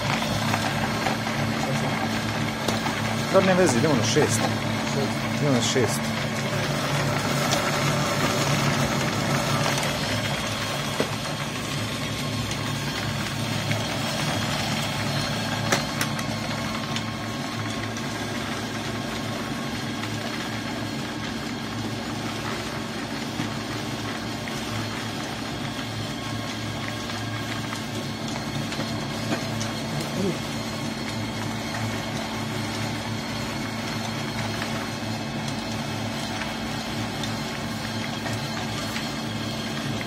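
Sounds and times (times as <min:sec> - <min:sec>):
pellet press machine hum: 0:00.0 - 0:40.0.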